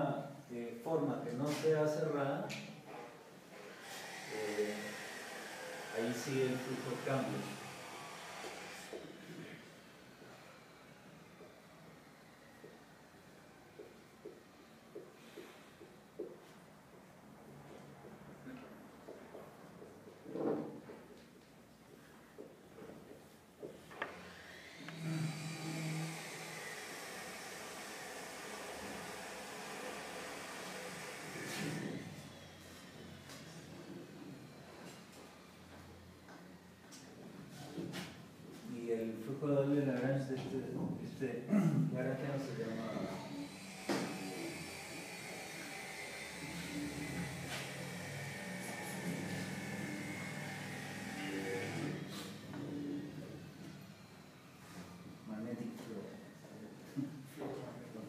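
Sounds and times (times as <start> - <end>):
electrical hum and buzz: 21.8 - 58.0
mechanical motor whirring: 24.2 - 32.7, 42.8 - 54.5.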